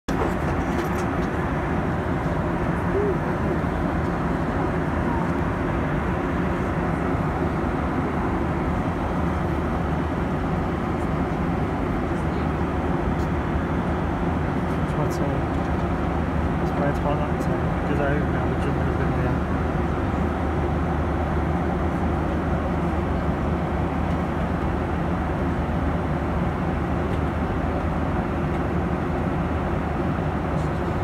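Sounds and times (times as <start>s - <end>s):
airliner cabin engine rush: 0.1s - 31.0s.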